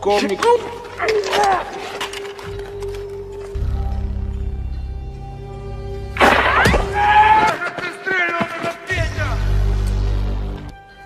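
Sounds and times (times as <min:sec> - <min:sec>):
film soundtrack music: 0:00.0 - 0:11.0
sharp cracks: 0:06.2 - 0:08.6.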